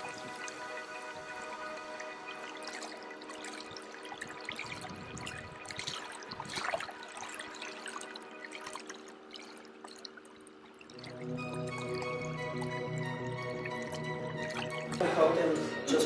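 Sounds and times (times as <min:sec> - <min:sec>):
background music of held notes: 0:00.0 - 0:09.2, 0:10.9 - 0:16.0.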